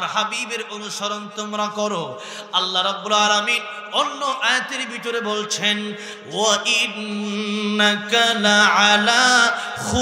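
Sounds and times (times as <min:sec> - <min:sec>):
man chanting into microphone: 0:00.0 - 0:10.0.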